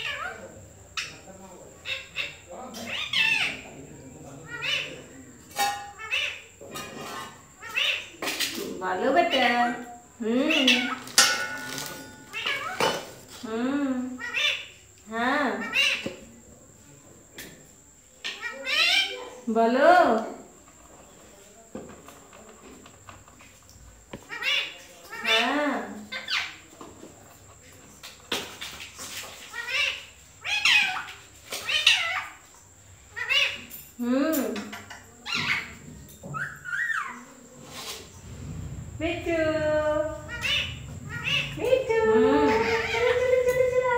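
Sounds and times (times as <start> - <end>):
parakeet calling: 1.8 - 3.8, 4.4 - 8.2, 9.1 - 13.3, 14.2 - 14.8, 15.5 - 16.1, 18.2 - 19.2, 24.3 - 26.6, 29.5 - 32.5, 33.1 - 33.7, 34.5 - 37.3, 39.2 - 43.9.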